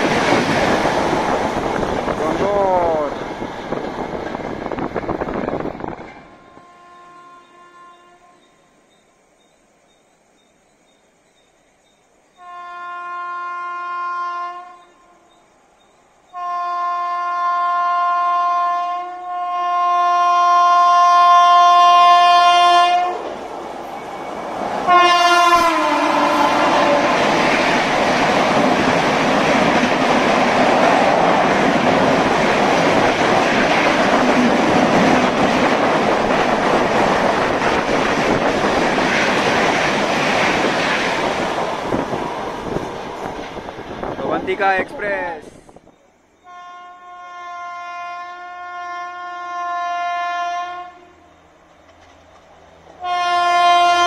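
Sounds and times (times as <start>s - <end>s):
train coaches rushing and clattering: 0.0s - 6.5s, 23.2s - 46.0s
locomotive horn blasts: 6.3s - 8.6s, 12.4s - 15.2s, 16.3s - 23.2s, 24.9s - 27.2s, 46.4s - 51.2s, 53.0s - 54.0s.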